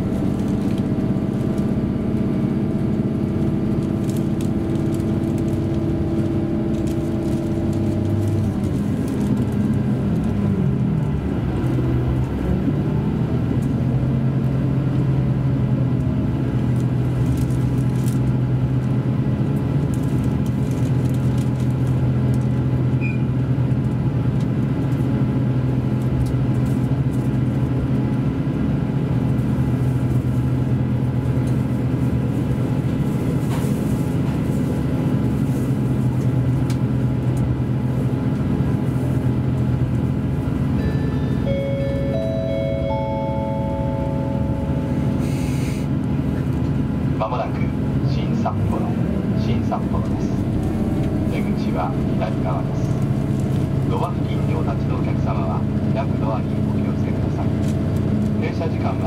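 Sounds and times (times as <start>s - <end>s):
railcar diesel engine running: 0.0s - 59.0s
rising announcement chime: 40.8s - 45.2s.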